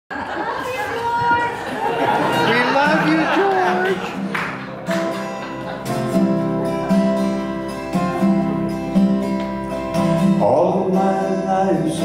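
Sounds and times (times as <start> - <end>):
hubbub of chatter: 0.1 - 8.8.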